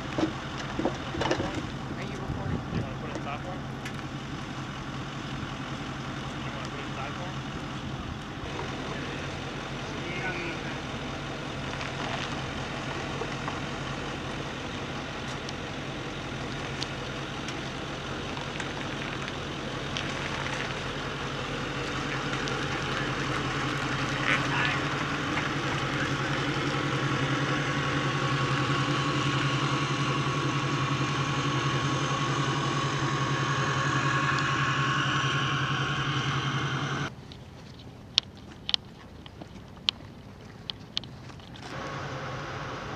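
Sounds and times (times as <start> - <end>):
steady high whine: 0.0 - 37.1, 41.6 - 42.9
truck engine running: 0.0 - 37.2, 40.9 - 42.9.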